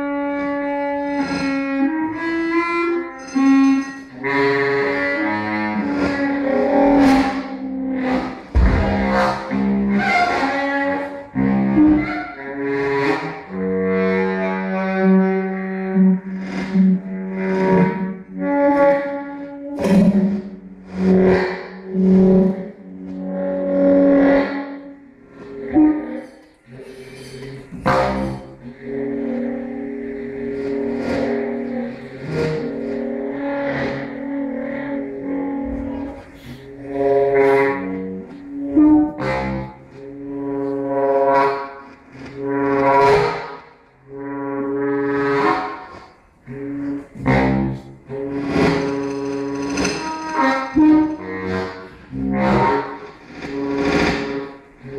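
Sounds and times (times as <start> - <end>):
processed saxophone drone: 0.0 - 54.9.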